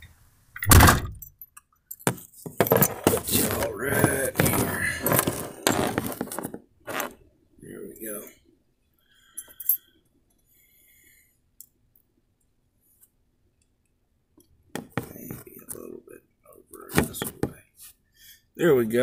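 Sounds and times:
phone handling knocks and rustles: 0:02.0 - 0:06.6, 0:14.8 - 0:15.5, 0:17.0 - 0:17.6.

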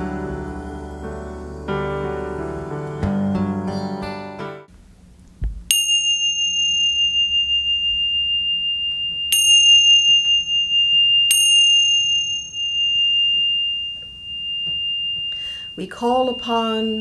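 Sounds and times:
cymbals clashing and ringing: 0:05.7 - 0:17.0.

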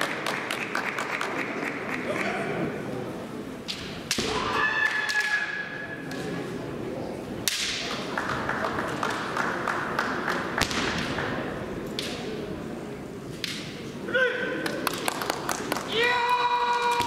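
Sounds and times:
sharp cracks of sticks striking: 0:03.7 - 0:04.5, 0:07.4 - 0:08.0.

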